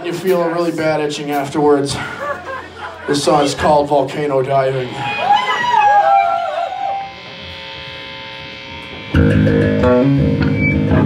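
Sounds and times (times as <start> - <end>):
amplifier hum: 2.8 - 11.0
pitched sliding tones: 4.6 - 11.0.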